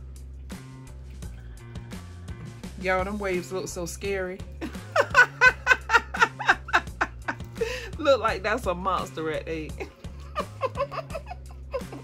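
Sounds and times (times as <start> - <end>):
background music: 0.0 - 12.0
woman laughing: 4.6 - 8.3, 9.5 - 12.0.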